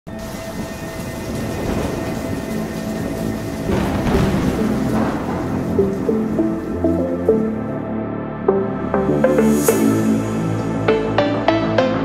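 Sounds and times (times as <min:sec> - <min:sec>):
steady rain: 0:00.1 - 0:07.8
thunder rolling: 0:00.1 - 0:07.8
synth drone: 0:00.1 - 0:12.0.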